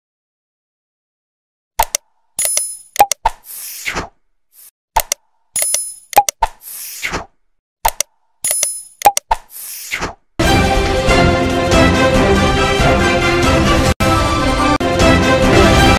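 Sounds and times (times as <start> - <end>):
button clicks: 1.8 - 3.4, 5.0 - 6.6, 7.8 - 9.7.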